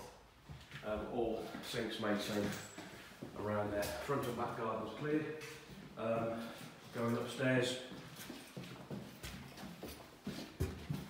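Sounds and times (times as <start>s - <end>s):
footsteps on wooden boards: 7.9s - 11.0s.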